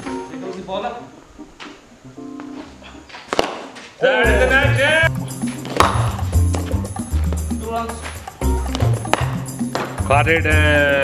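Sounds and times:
background music: 0.0 - 11.0
cricket bat striking ball: 5.6 - 6.7, 8.8 - 10.0.

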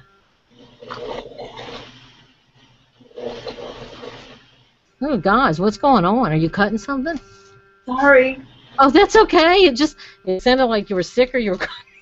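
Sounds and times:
rasping gurgling bursts: 0.6 - 2.3, 3.1 - 4.5.

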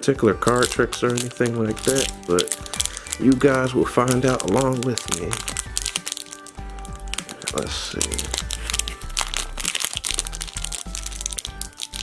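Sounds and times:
background music: 0.0 - 12.0
foil wrapper crinkling: 0.0 - 12.0.

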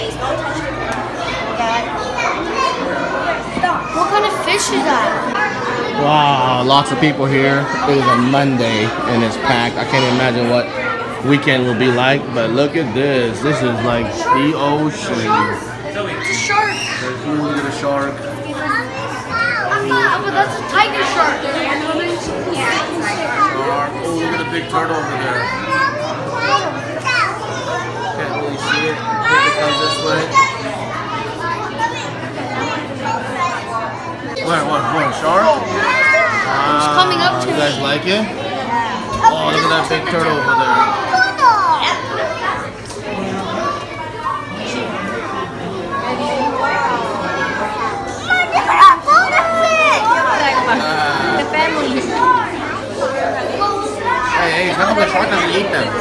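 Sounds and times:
children talking and calling out: 0.0 - 56.0.

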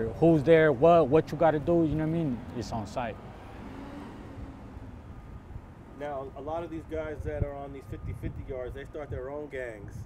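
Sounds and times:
distant street traffic rumble: 0.0 - 10.0.

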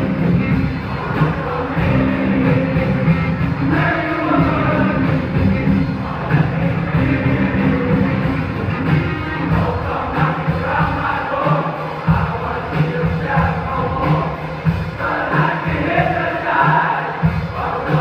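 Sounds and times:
live rock band: 0.0 - 18.0
male group singing: 0.0 - 18.0.

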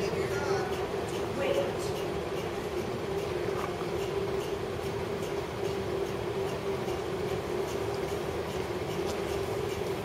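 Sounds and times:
steady constant-pitch hum: 0.0 - 10.0.

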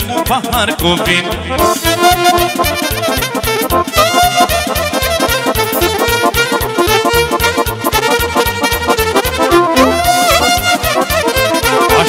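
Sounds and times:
accordion and brass party band: 0.0 - 12.0.

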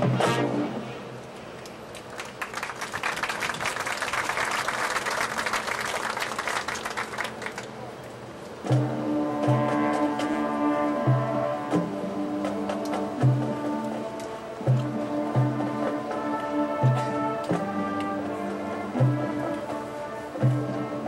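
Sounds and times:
marching band percussion strikes: 0.0 - 0.8, 8.6 - 21.0
brass chords: 0.0 - 1.2, 8.6 - 21.0.

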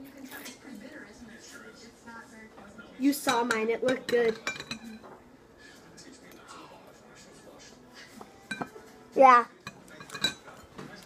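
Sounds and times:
faint whispered voices: 0.0 - 11.0.

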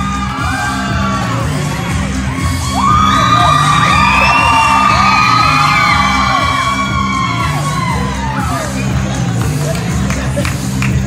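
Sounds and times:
entrance music over loudspeakers: 0.0 - 11.0.

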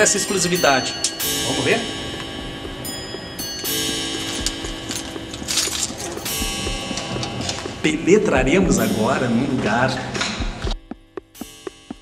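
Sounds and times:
background music sustained notes: 0.0 - 12.0.

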